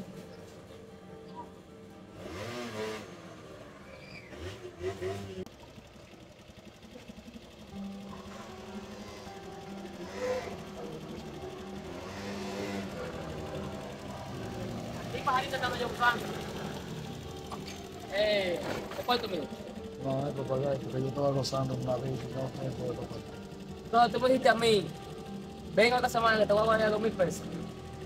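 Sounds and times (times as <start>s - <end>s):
background music: 0.0s - 5.4s, 7.5s - 28.0s
motor scooter engine: 0.0s - 28.0s.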